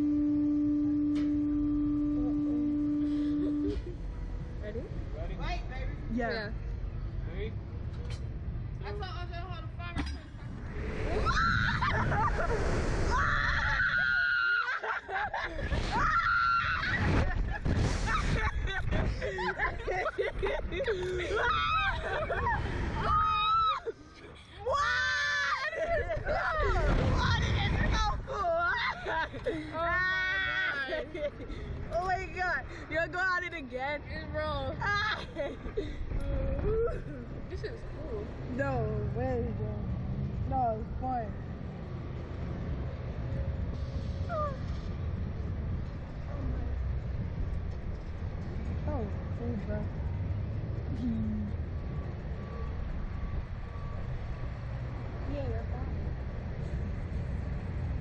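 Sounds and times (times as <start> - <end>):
wind rumbling on microphone: 10.3 - 14.0, 15.5 - 23.6, 26.0 - 28.5, 41.4 - 58.0
girl screaming: 11.2 - 12.0, 23.0 - 23.9.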